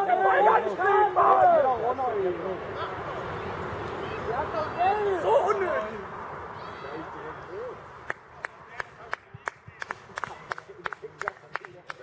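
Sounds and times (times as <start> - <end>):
people clapping: 8.0 - 12.0.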